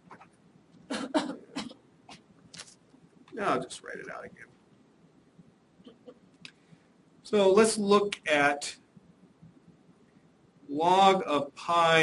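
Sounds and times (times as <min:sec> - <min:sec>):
person coughing: 0:00.9 - 0:01.8.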